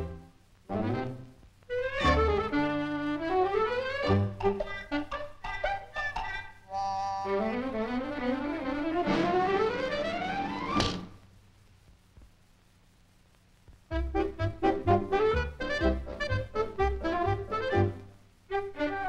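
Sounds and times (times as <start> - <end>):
cartoon brass music: 0.0 - 10.7, 13.9 - 19.0
comic crash-like thud: 9.0 - 11.2.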